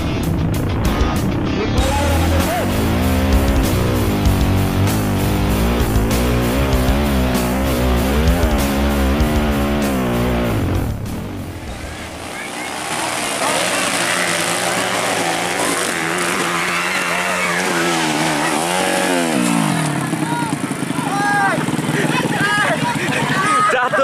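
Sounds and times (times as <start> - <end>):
dirt bike engine revving: 0.0 - 24.0
people shouting: 1.8 - 4.5, 11.8 - 24.0.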